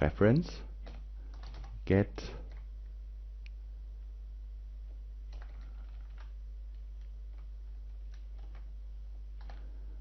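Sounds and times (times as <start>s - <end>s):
steady low hum: 0.0s - 10.0s
computer keyboard keystrokes: 0.8s - 1.8s, 5.3s - 7.5s, 8.1s - 8.7s, 9.4s - 9.7s.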